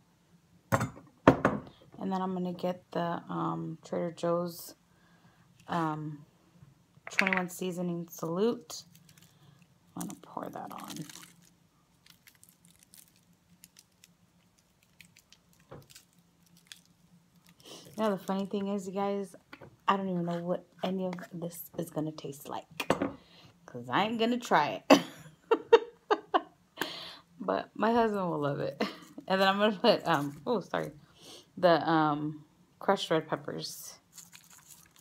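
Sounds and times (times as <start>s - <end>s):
knocks on kitchen counter: 0.7s - 1.7s.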